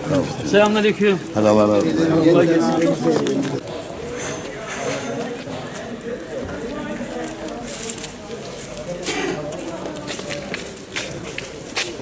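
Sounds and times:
people talking: 0:00.0 - 0:12.0
footsteps on pavement: 0:05.2 - 0:12.0.

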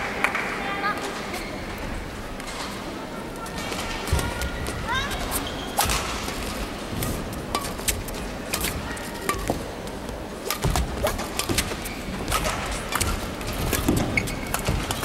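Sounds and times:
shoes squeaking on court: 0:03.6 - 0:06.4, 0:08.6 - 0:15.0
rackets striking shuttlecock: 0:05.7 - 0:15.0.

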